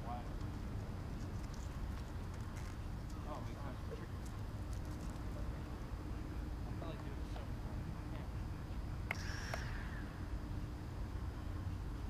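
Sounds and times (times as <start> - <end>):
low outdoor rumble: 0.0 - 12.0
faint distant voices: 1.3 - 9.0.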